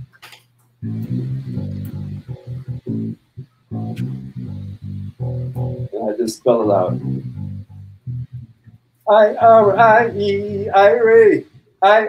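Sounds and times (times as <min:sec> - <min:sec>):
bass guitar plucked notes: 0:00.8 - 0:11.6.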